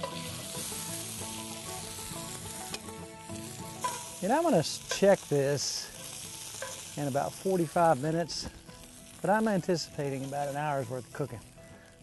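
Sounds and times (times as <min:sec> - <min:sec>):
meat sizzling in skillet: 0:00.0 - 0:12.0.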